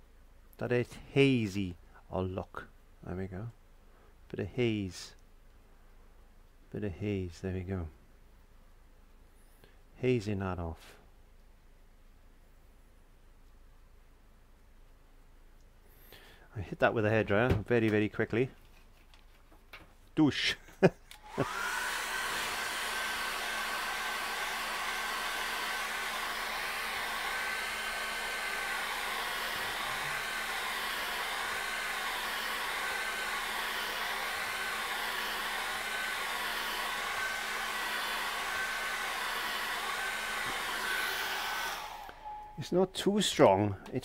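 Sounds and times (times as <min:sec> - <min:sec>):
hair dryer running: 0:21.1 - 0:42.5.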